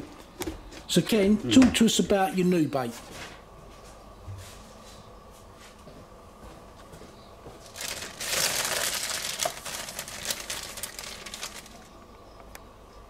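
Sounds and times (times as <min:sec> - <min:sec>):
plastic bag crinkling: 0:07.6 - 0:12.0.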